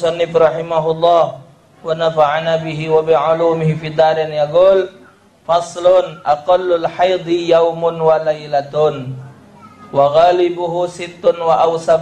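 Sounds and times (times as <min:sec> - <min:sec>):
man reciting through microphone: 0:00.0 - 0:12.0.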